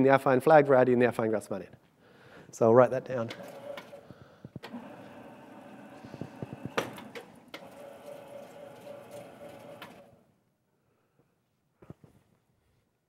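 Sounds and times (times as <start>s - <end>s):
steady hum: 3.3s - 10.2s
sliding blackboard panels rumbling: 4.7s - 10.1s.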